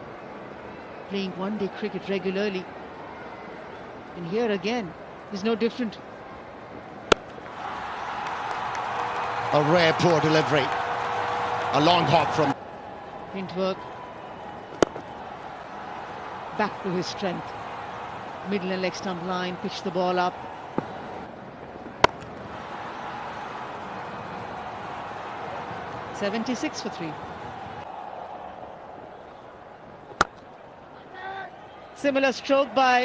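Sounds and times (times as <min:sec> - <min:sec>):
stadium background noise: 0:00.0 - 0:33.0
cricket bat striking ball: 0:07.1 - 0:07.4, 0:14.7 - 0:15.1, 0:21.9 - 0:22.3, 0:30.1 - 0:30.5.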